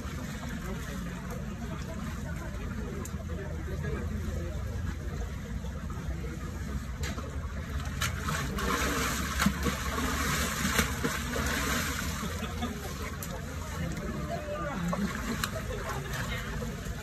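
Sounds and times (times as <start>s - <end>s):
low background rumble: 0.0s - 17.0s
water splashing and sloshing: 0.0s - 17.0s.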